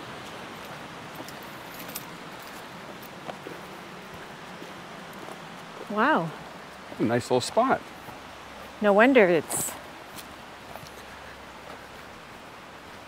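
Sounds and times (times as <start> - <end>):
faint footsteps on dirt: 0.0 - 13.0
rocky creek flowing: 0.0 - 13.0.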